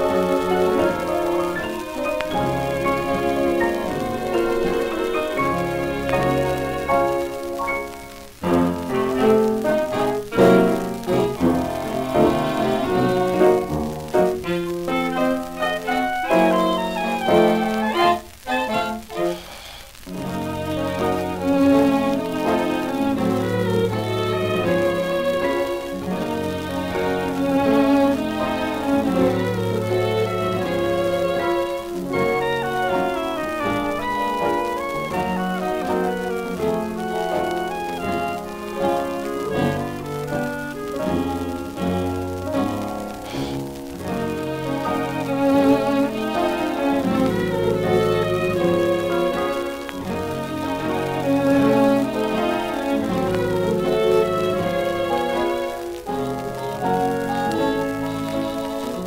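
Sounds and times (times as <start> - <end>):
dance orchestra with violins: 0.0 - 59.0.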